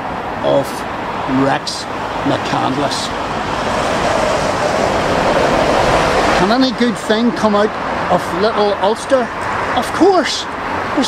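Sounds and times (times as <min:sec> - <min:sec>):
motor vehicle passing: 0:01.0 - 0:11.0.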